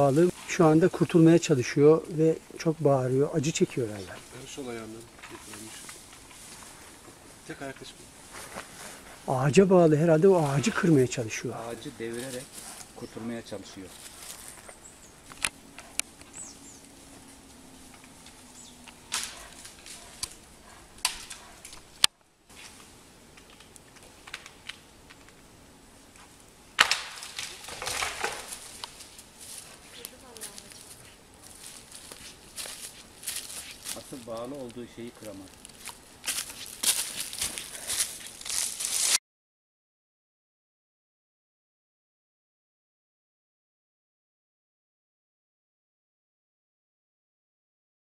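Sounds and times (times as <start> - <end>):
rustling in dry leaves and twigs: 0.0 - 25.3, 26.0 - 39.2
small bird chirping: 16.2 - 16.9, 18.5 - 19.1
wood cracking and snapping: 18.9 - 20.4, 21.0 - 22.1, 23.4 - 25.4, 26.8 - 29.0.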